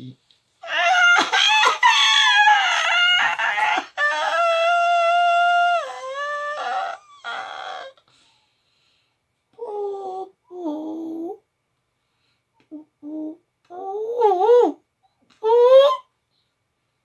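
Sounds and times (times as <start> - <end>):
woman's high-pitched vocal cry: 0.6 - 7.9.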